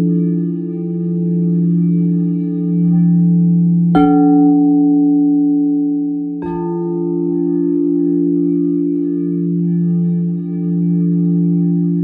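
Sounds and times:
crystal singing bowls ringing: 0:00.0 - 0:12.0
singing bowl struck: 0:00.0 - 0:12.0.

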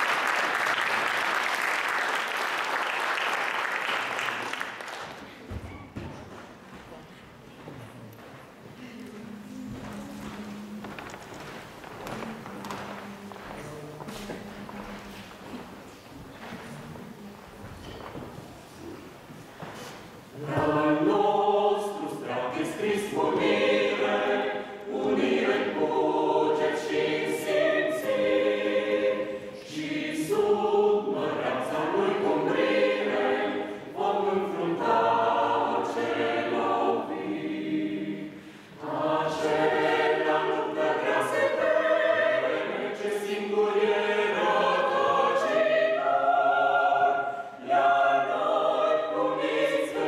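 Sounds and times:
choir singing unaccompanied: 0:09.1 - 0:15.8, 0:20.3 - 0:50.0.

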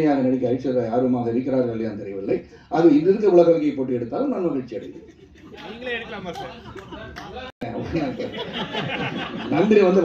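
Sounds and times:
man talking: 0:00.0 - 0:08.6, 0:09.3 - 0:10.0.

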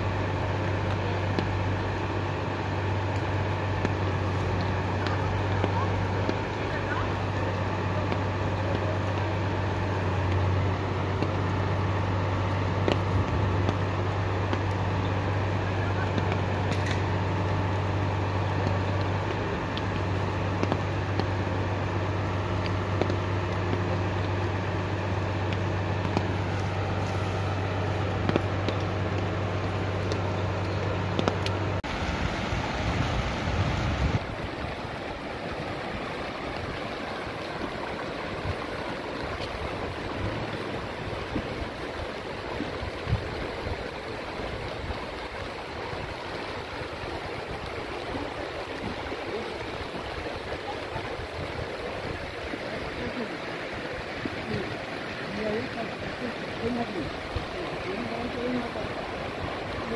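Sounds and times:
floodwater rushing: 0:00.0 - 0:59.9
steady low hum: 0:00.0 - 0:59.9.

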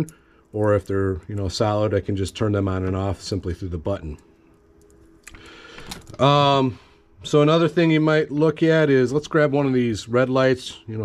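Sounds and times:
cables rustling: 0:04.8 - 0:06.3.

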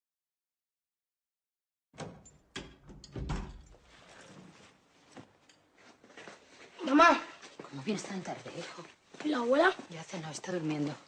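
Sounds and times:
door closing with thud: 0:02.0 - 0:03.9.

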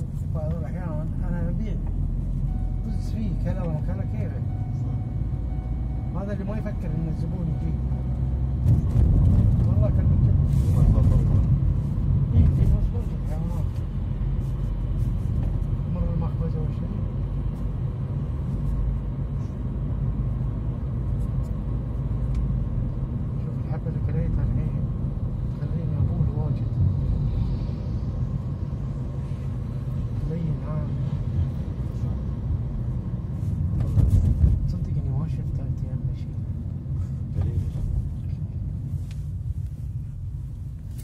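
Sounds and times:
car road and engine rumble: 0:00.0 - 0:41.0.

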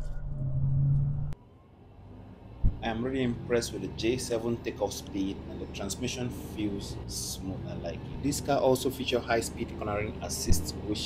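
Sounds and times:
car cabin engine drone: 0:00.0 - 0:11.0
low road rumble: 0:00.0 - 0:11.0
single thump: 0:02.6 - 0:02.8
man speaking: 0:02.8 - 0:11.0.

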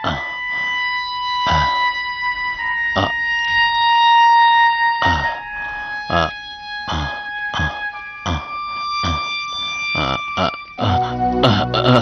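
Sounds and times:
dramatic synthesizer score: 0:00.0 - 0:12.0.

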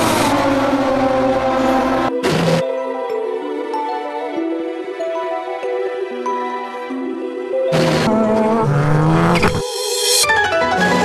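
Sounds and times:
sustained music notes: 0:06.8 - 0:11.0.

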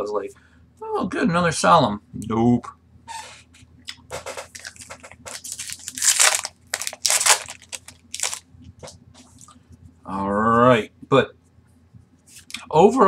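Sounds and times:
trading cards scraping and rustling: 0:04.2 - 0:09.3.

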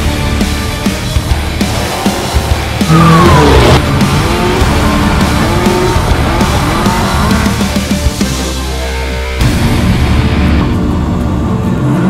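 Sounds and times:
music playing: 0:00.0 - 0:12.0
race truck engine accelerating: 0:00.5 - 0:08.4.

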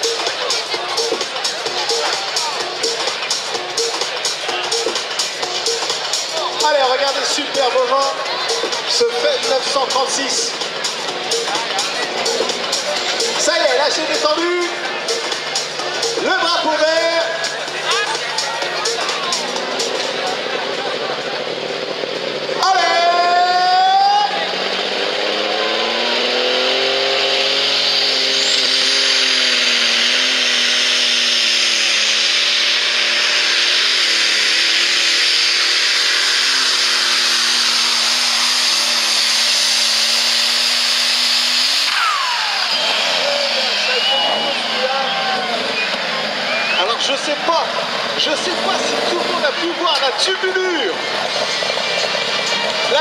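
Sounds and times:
diesel tractor engine revving: 0:00.0 - 0:53.0
turbo whine: 0:00.0 - 0:53.0.

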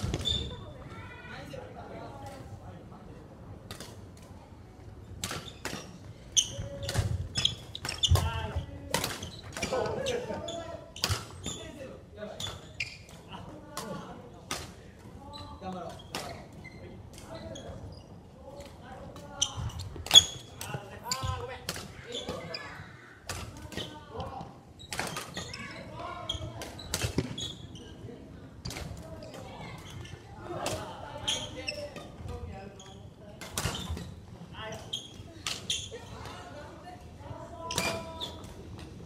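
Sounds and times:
low hum of sports hall: 0:00.0 - 0:39.0
players' voices: 0:05.9 - 0:39.0.

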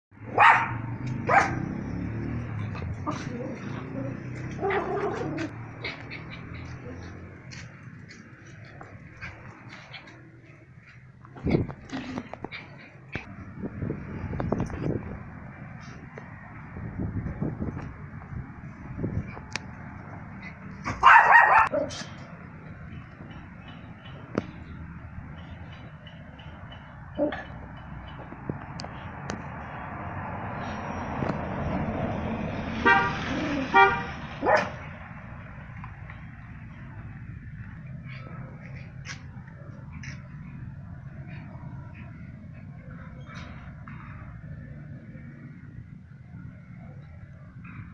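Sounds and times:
vehicle passing: 0:00.1 - 0:47.9
car horn toots: 0:32.8 - 0:34.2.

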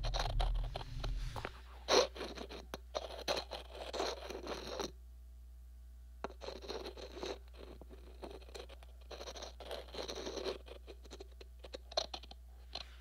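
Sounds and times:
low rumble: 0:00.0 - 0:01.8
scratching and scraping strokes: 0:00.0 - 0:04.9, 0:06.4 - 0:12.1.

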